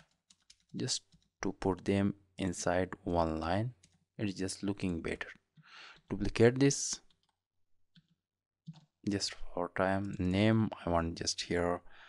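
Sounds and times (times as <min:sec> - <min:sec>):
keyboard keys clicking: 0:00.0 - 0:01.3.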